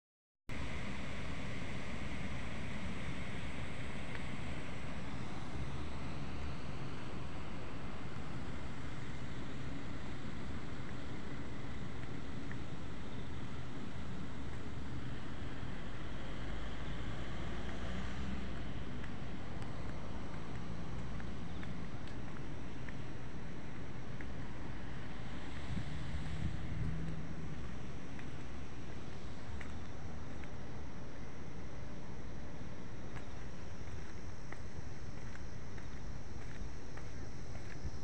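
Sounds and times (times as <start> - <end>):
distant city traffic: 0.5 - 38.0
wind buffeting microphone: 25.5 - 27.8.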